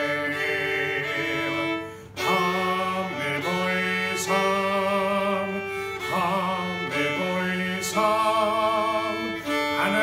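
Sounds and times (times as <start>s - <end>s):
bowed fiddle: 0.0s - 10.0s
man singing folk song: 0.0s - 10.0s.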